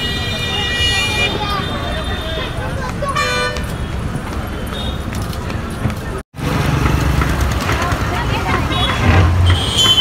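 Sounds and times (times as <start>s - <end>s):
high steady horn tone: 0.0s - 2.6s, 8.7s - 10.0s
bus engines rumbling: 0.0s - 10.0s
people's voices: 0.3s - 10.0s
motorcycles: 3.6s - 10.0s.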